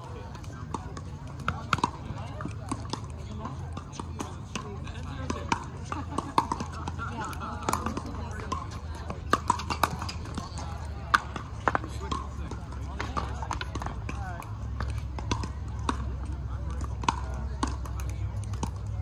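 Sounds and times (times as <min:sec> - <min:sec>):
indistinct voices: 0:00.0 - 0:19.0
paddles popping against balls: 0:00.3 - 0:04.6, 0:05.2 - 0:19.0.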